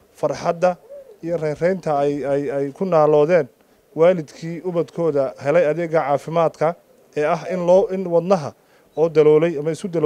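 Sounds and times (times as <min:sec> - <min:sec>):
man speaking into a microphone: 0:00.2 - 0:10.0.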